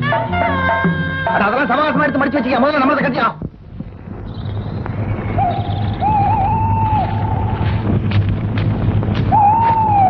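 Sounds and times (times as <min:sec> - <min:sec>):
steady low hum: 0:03.4 - 0:09.6.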